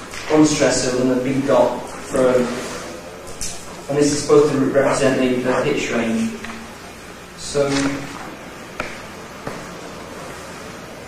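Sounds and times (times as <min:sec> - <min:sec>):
marker tapping whiteboard: 0:07.7 - 0:09.7.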